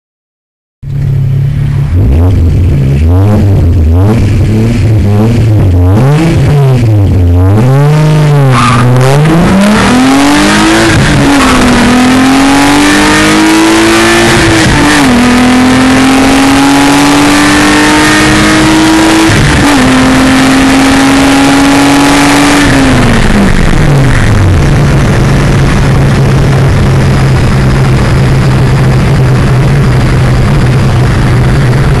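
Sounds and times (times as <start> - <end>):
car engine revving: 0.8 - 32.0.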